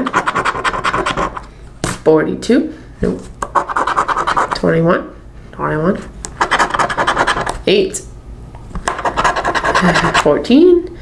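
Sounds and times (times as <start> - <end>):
scratch-off ticket scraping: 0.0 - 1.4, 6.4 - 7.6, 8.9 - 10.3.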